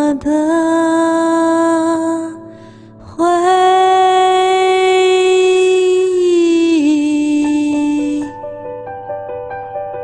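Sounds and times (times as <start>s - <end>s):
woman singing a long note: 3.2s - 8.4s.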